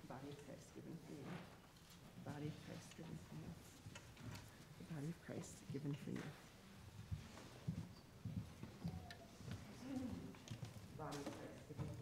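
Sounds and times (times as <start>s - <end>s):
soft thumps of footsteps: 5.8s - 12.0s.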